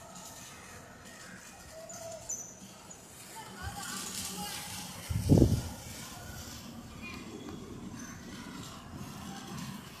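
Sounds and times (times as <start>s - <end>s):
rain falling on street: 2.7s - 7.9s.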